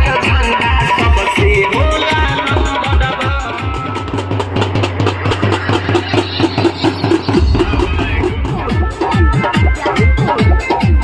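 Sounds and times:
drums beaten fast: 0.0 - 11.0.

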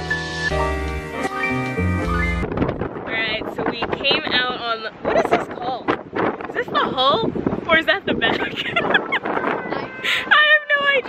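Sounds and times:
background music: 0.0 - 2.6
wind buffeting microphone: 2.0 - 11.0
woman laughing: 8.2 - 10.5.

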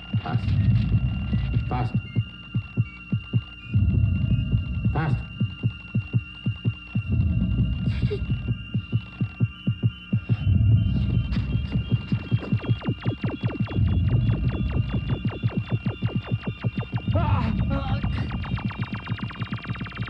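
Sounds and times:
high electronic tone: 0.0 - 20.0
racing heartbeat: 0.0 - 20.0.

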